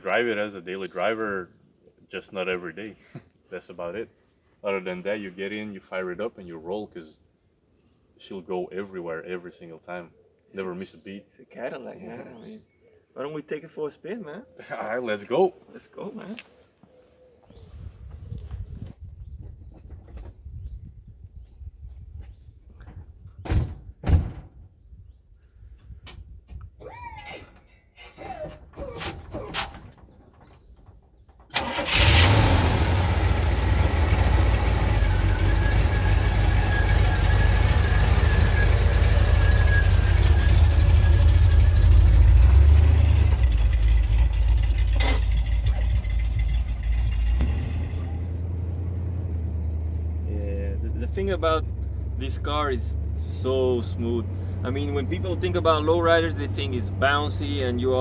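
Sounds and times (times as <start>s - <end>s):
car engine starting and running: 31.5s - 58.0s.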